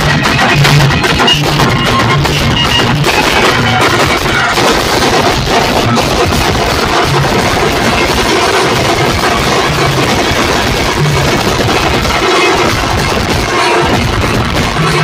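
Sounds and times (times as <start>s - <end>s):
steel drums beaten with sticks: 0.0s - 15.0s.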